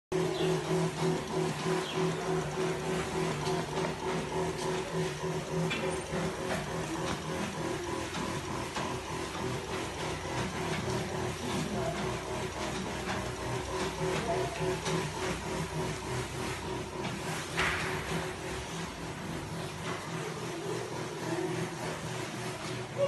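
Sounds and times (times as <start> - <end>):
sprayer pump humming: 0.1 - 23.0.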